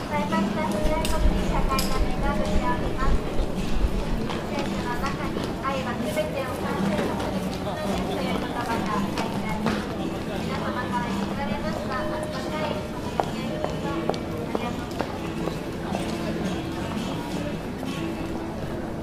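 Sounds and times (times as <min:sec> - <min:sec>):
crowd chatter: 0:00.0 - 0:19.0
footsteps on pavement: 0:03.8 - 0:06.1, 0:06.7 - 0:11.4.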